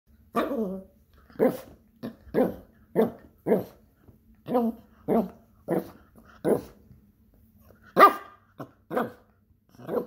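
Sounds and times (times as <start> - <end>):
small dog barking: 8.0 - 9.2.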